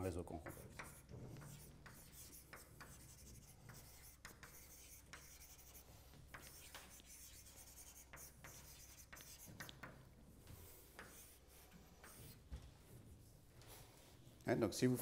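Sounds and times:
chalk scratching on blackboard: 0.3 - 12.5.

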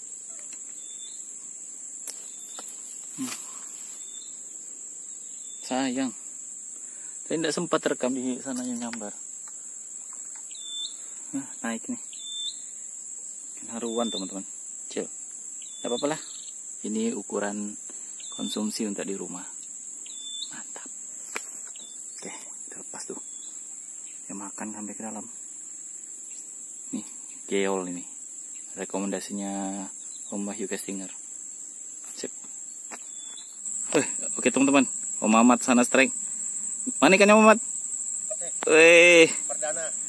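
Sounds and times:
high-pitched insect chorus: 0.0 - 40.0
faint chirp: 0.3 - 1.3, 10.0 - 12.9, 13.5 - 16.6, 18.0 - 18.9, 19.5 - 20.9, 21.6 - 24.4
faint ticks: 8.4 - 10.6.

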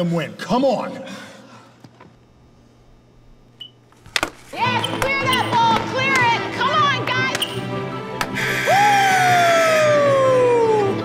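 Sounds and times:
low steady hum: 0.0 - 8.8.

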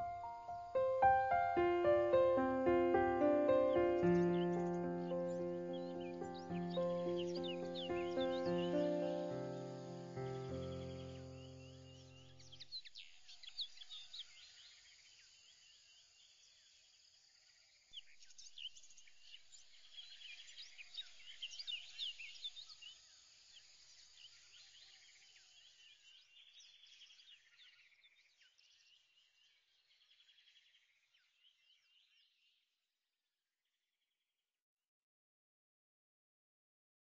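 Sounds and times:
birds chirping and trilling: 0.0 - 14.3.

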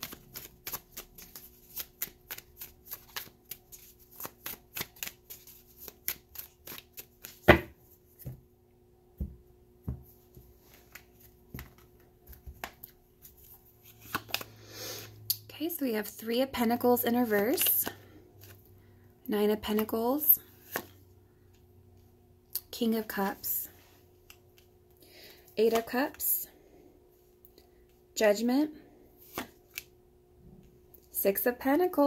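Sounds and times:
cards shuffling: 0.0 - 8.4, 10.6 - 14.6, 17.2 - 18.7, 20.5 - 21.0, 25.7 - 26.2, 29.2 - 29.9.

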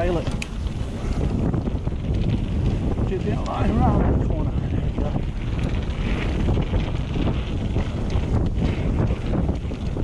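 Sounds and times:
bike rattling with clicks: 0.0 - 10.0
bike tyres rolling on dirt: 0.0 - 10.0
wind buffeting microphone: 0.0 - 10.0.

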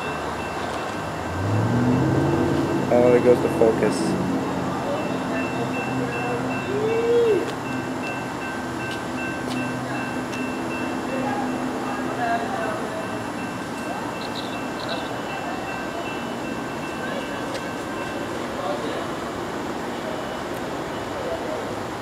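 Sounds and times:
distant diesel train hum: 0.0 - 22.0.

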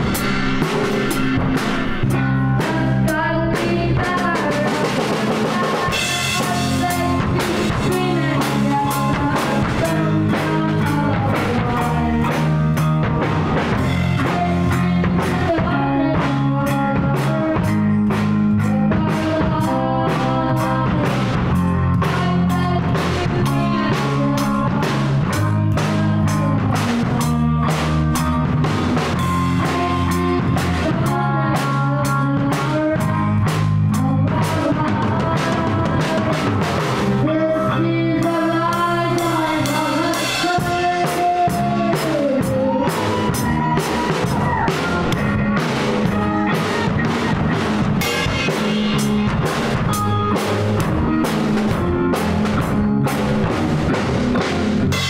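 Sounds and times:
bass guitar: 0.0 - 55.0
drum kit beat: 0.0 - 55.0
electric guitar: 0.0 - 55.0
rock band playing live: 0.0 - 55.0.

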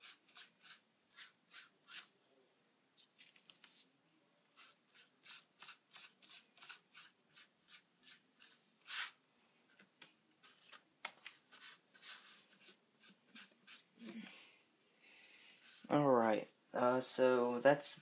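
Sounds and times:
hands rubbing cardboard on newspaper: 4.5 - 9.2, 11.5 - 13.9.

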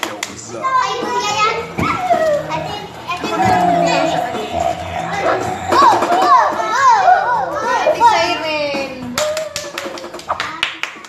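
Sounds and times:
children shouting and squealing: 0.7 - 8.3.

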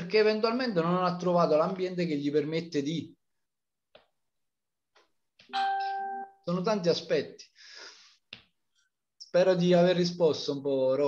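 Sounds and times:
single-pitched alert tone: 5.5 - 6.4.

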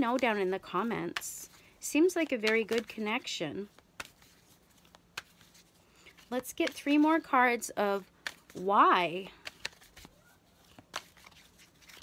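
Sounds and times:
cards shuffling: 0.0 - 7.4, 8.0 - 12.0
sharp card clicks: 2.4 - 3.0, 5.1 - 5.4, 9.4 - 12.0.

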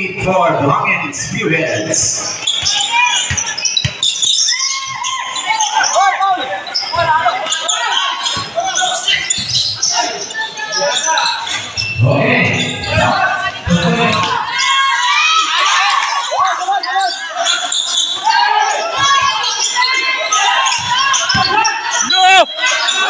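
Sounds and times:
voices and shouts echoing: 0.0 - 23.0
basketball bouncing on hardwood: 2.6 - 4.0.

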